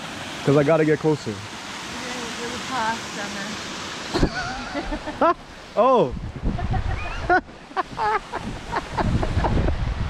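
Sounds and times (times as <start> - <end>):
waterfall rushing into pool: 0.0 - 10.0.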